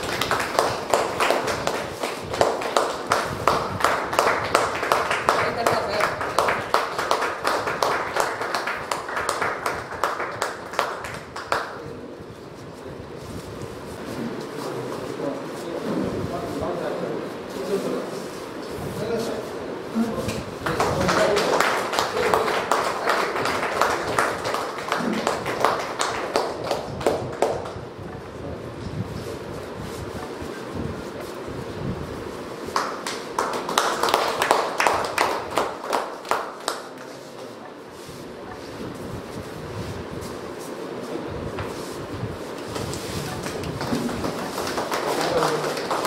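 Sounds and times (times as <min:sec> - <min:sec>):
people clapping: 0:00.0 - 0:12.3, 0:20.2 - 0:28.2, 0:32.6 - 0:37.6, 0:42.6 - 0:46.0.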